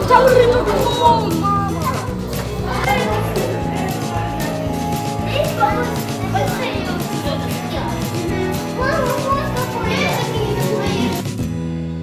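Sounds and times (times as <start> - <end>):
children chattering and calling out: 0.0 - 11.3
background music: 0.0 - 12.0.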